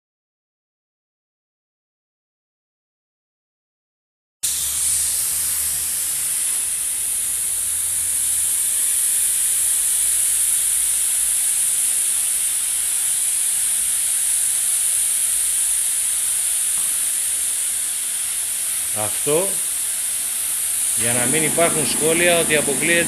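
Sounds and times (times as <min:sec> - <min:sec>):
spray gun air hiss: 0:04.4 - 0:23.0.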